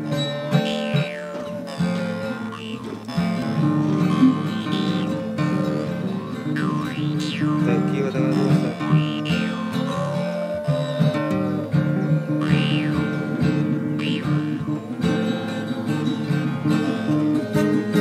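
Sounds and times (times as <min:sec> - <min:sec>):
acoustic guitars strumming: 0:00.0 - 0:18.0
harmonica melody: 0:00.0 - 0:18.0.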